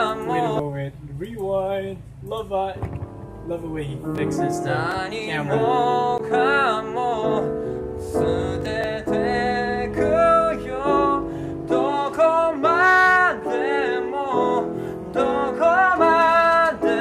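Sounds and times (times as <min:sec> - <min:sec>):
upright piano accompaniment: 0:00.0 - 0:00.6, 0:02.8 - 0:17.0
man singing: 0:00.0 - 0:00.7, 0:04.1 - 0:17.0.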